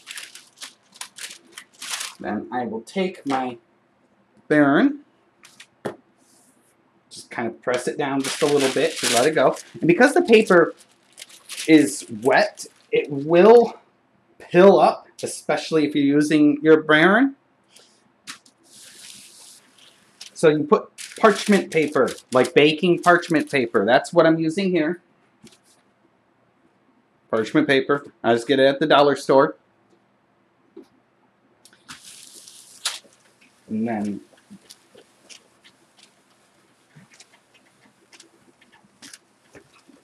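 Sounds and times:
paper crinkling: 0.0s - 2.2s, 5.4s - 5.8s, 7.8s - 13.2s, 18.3s - 20.4s, 21.0s - 23.6s, 31.7s - 40.0s.

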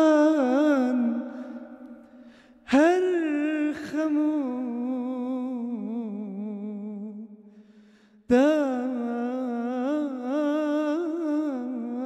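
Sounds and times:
man singing unaccompanied: 0.0s - 2.0s, 2.7s - 7.3s.

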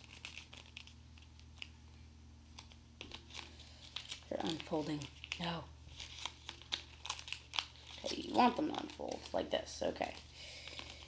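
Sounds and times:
paper crinkling and rustling: 0.0s - 1.8s, 2.5s - 11.0s.

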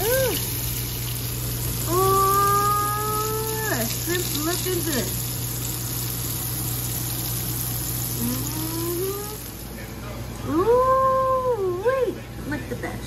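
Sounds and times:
shrimp frying in hot oil: 0.0s - 10.8s.

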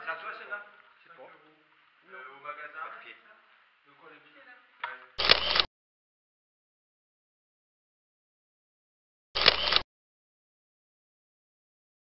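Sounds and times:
camera shutter clicks: 5.2s - 5.7s, 9.4s - 9.9s.

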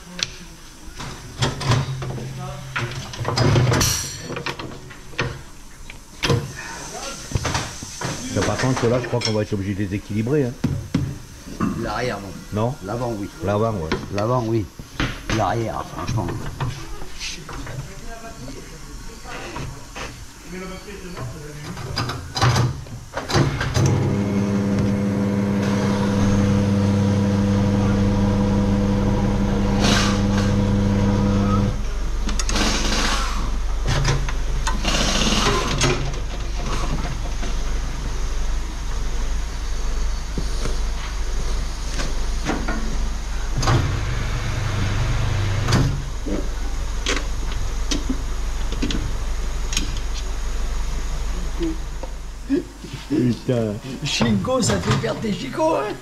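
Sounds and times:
electric motor hum: 23.7s - 33.5s
low machine drone: 23.8s - 33.8s, 42.9s - 48.6s.

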